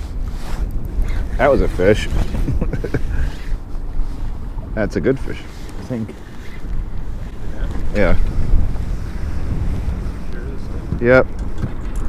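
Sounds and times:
choppy river water: 0.0 - 12.0
wind buffeting microphone: 0.0 - 12.0.

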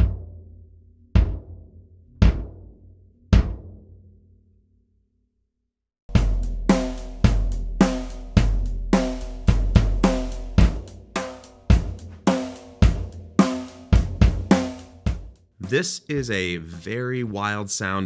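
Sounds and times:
ringing bass drum kicks: 1.2 - 2.7, 3.3 - 3.8, 6.1 - 15.3.

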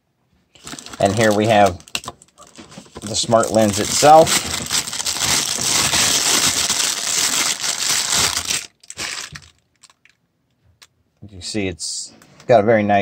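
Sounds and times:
plastic bag crinkling: 0.5 - 10.2.

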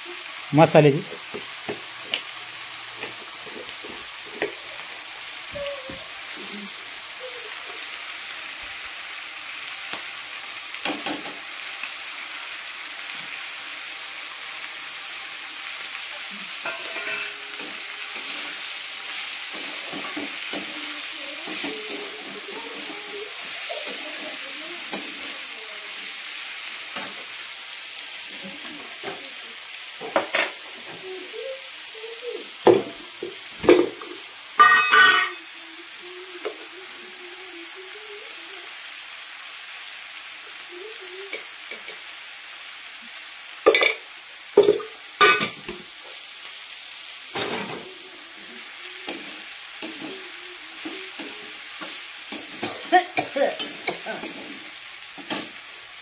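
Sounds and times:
vegetables sizzling in a wok: 0.0 - 56.0
metal spatula scraping a pan: 16.6 - 23.0, 34.6 - 35.4.

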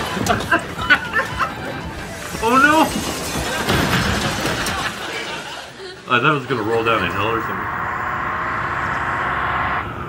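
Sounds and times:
stifled chuckling and laughter: 0.0 - 2.0
noisy tv soundtrack: 0.0 - 10.0.

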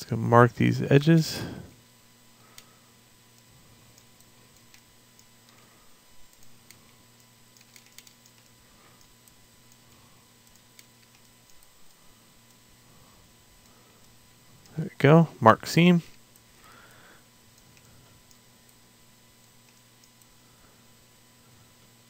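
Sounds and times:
low steady hum: 0.0 - 22.0
mouse and keyboard clicks: 6.3 - 9.8.

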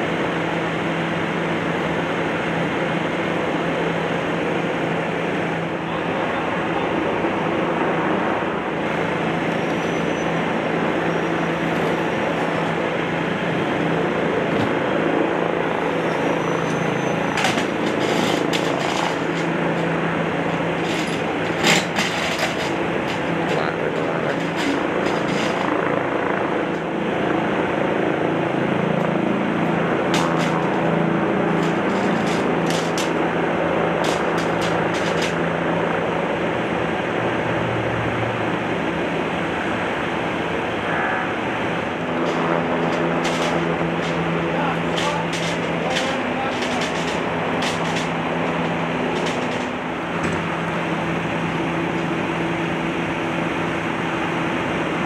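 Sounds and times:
tow truck engine running: 0.0 - 55.0
sharp clicks and knocks: 30.0 - 30.9, 34.0 - 35.4, 42.2 - 50.5.

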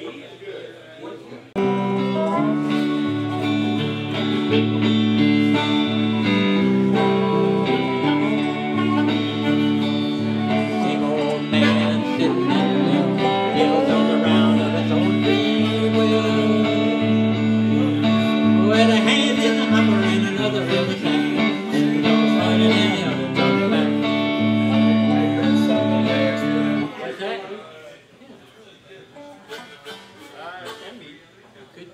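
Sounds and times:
slide dobro: 1.6 - 26.9
electric guitar: 1.6 - 27.0
harmonica: 1.6 - 27.0, 29.2 - 31.0.

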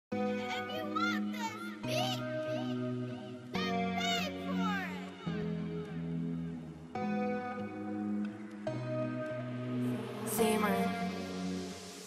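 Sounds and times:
sustained synth chords: 5.1 - 12.0
high vocal-like sliding melody: 9.8 - 12.0.

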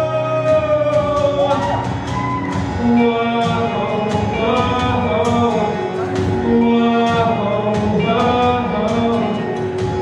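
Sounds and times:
man singing into a microphone: 0.0 - 1.7, 2.6 - 10.0
musical accompaniment: 0.0 - 10.0.

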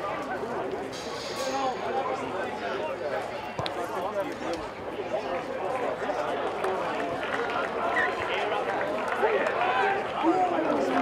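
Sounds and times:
onlookers talking: 0.0 - 11.0.

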